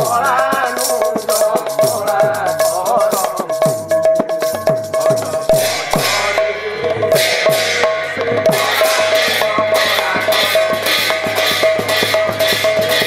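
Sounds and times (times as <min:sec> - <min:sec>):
barrel drum fast rhythm: 0:00.0 - 0:13.0
brass hand cymbals clashing: 0:04.1 - 0:13.0.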